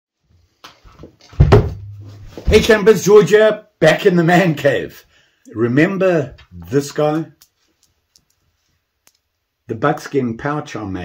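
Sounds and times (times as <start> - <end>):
heavy thumps: 1.2 - 2.8.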